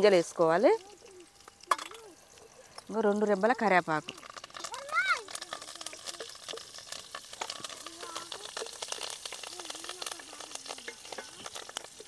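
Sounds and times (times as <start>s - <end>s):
food sizzling in hot oil: 0.0s - 12.0s
wooden spatula stirring: 3.0s - 12.0s.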